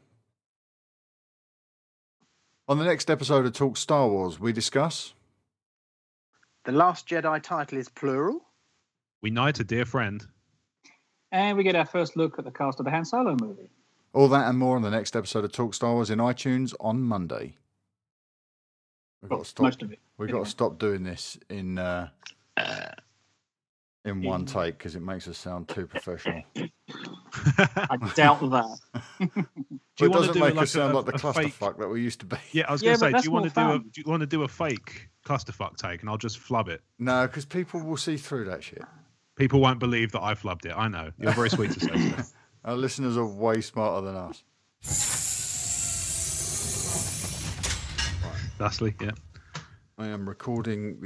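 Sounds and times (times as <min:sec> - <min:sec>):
man speaking: 0:02.7 - 0:05.1, 0:09.2 - 0:10.2, 0:14.2 - 0:17.5, 0:19.2 - 0:22.1, 0:24.1 - 0:26.6, 0:27.4 - 0:29.2, 0:30.0 - 0:44.4, 0:48.2 - 0:49.2, 0:50.0 - 0:51.0.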